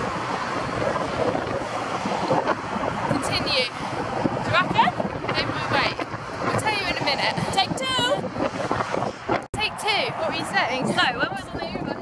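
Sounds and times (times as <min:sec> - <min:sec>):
motorway traffic rushing: 0:00.0 - 0:12.0
wind buffeting microphone: 0:00.0 - 0:12.0
women talking: 0:03.1 - 0:03.8, 0:04.4 - 0:08.2, 0:09.6 - 0:12.0.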